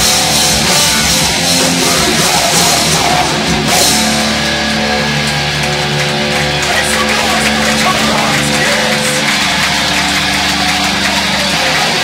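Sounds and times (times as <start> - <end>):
distorted electric guitars and bass: 0.0 - 12.0.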